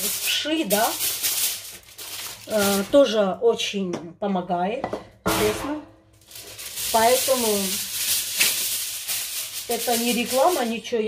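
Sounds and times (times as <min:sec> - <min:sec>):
woman speaking: 0:00.0 - 0:01.1, 0:02.4 - 0:05.9, 0:06.8 - 0:07.9, 0:09.7 - 0:11.0
handling rustle: 0:00.0 - 0:03.0, 0:06.2 - 0:10.9.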